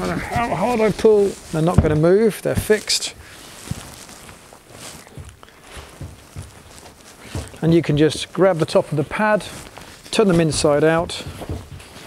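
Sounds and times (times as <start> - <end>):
faint rustling: 0.0 - 12.0.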